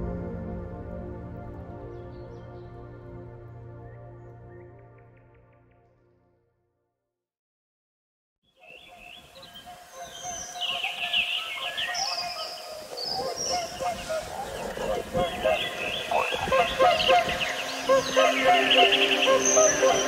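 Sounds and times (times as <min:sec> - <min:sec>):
calm music: 0:00.0 - 0:06.9, 0:11.9 - 0:20.0
birds chirping and trilling: 0:08.5 - 0:20.0.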